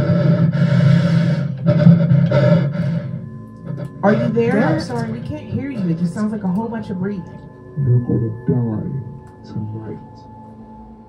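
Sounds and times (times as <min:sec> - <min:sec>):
heavy rasping breathing: 0:00.0 - 0:04.8
low ominous music drone: 0:00.0 - 0:11.0.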